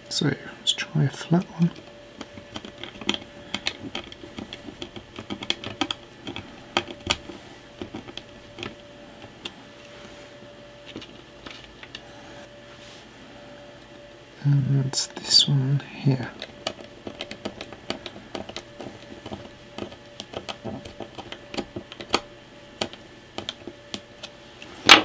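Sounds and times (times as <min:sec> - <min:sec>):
screwdriver clicks and scrapes on plastic: 0:01.3 - 0:08.8, 0:16.4 - 0:24.4.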